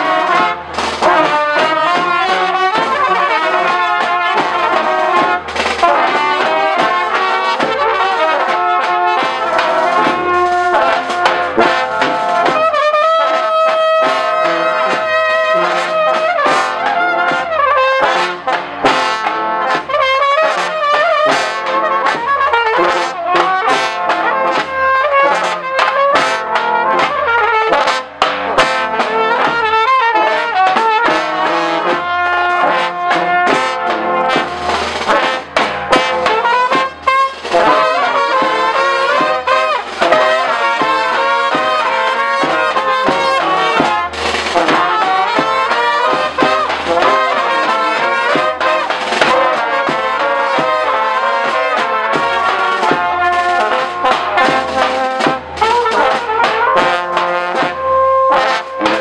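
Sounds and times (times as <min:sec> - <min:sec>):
brass band playing dance tune: 0:00.0 - 0:59.0.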